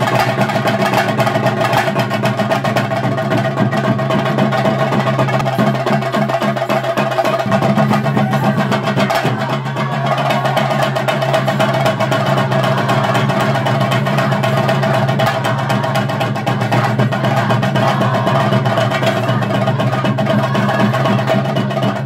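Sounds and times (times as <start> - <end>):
fast drumming: 0.0 - 22.0.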